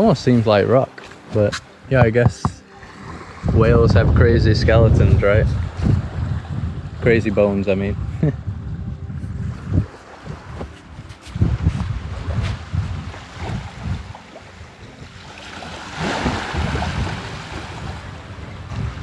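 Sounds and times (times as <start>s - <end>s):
small waves lapping on shore: 0.0s - 3.8s, 9.5s - 19.0s
wind buffeting microphone: 1.4s - 19.0s.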